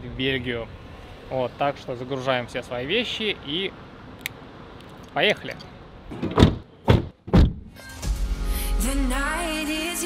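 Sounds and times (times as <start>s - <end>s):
car doors slamming: 6.1s - 7.7s.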